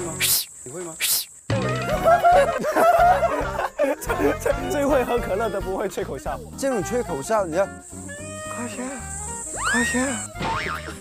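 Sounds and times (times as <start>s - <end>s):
background music: 1.5s - 11.0s
young men laughing loudly: 1.8s - 5.5s.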